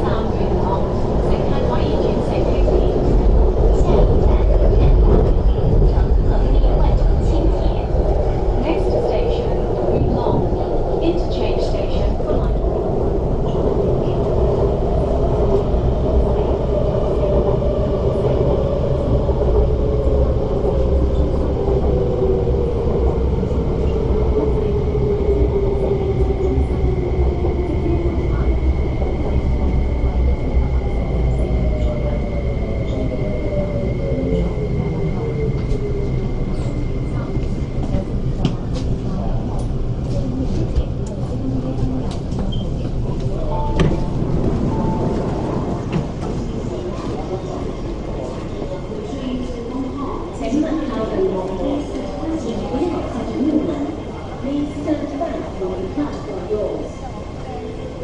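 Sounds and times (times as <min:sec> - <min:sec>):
train rumble: 0:00.0 - 0:58.0.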